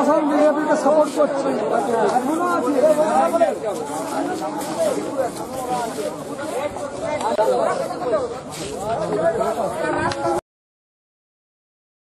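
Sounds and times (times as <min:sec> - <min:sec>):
people talking: 0:00.0 - 0:10.4.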